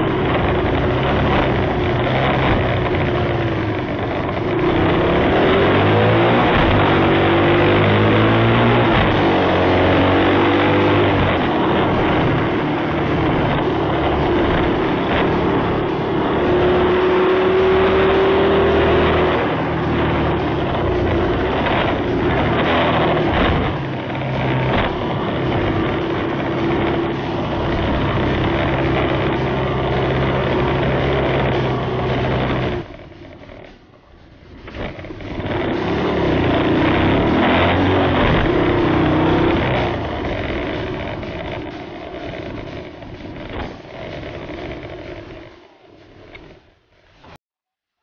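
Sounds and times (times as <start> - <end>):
moped engine running: 0.0 - 47.3.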